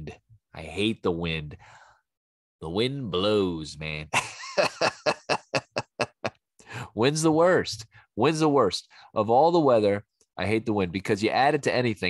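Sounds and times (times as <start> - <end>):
man laughing: 4.1 - 6.4.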